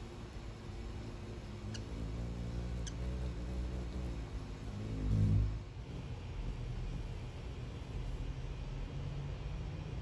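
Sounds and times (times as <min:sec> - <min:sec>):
hummingbird wings humming: 0:00.0 - 0:08.7.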